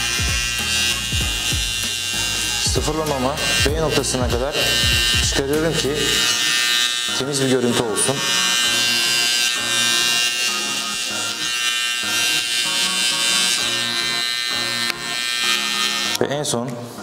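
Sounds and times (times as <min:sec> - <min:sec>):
background music with bass: 0:00.0 - 0:06.3
hair clipper running: 0:00.0 - 0:16.2.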